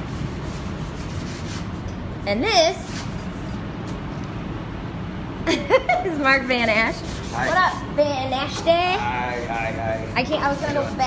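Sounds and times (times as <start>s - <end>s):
steady rubbing and scraping: 9.0s - 11.0s.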